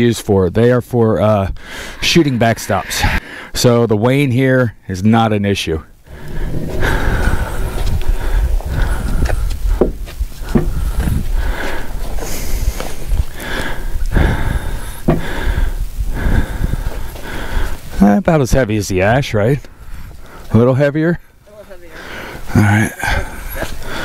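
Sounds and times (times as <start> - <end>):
wind buffeting microphone: 6.0 - 18.0
wooden beam knocks: 9.8 - 10.8.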